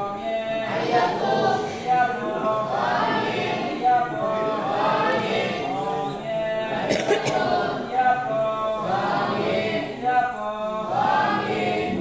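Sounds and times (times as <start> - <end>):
group singing a devotional chant: 0.0 - 12.0.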